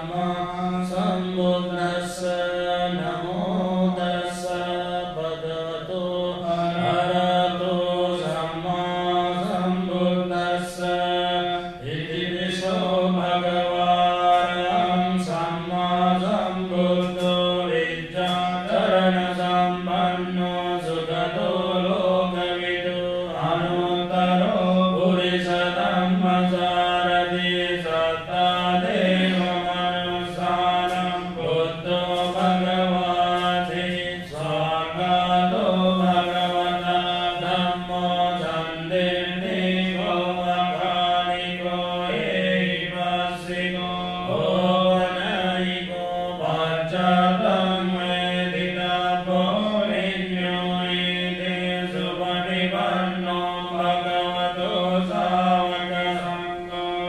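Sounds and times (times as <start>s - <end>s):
man chanting into a microphone: 0.0s - 57.0s.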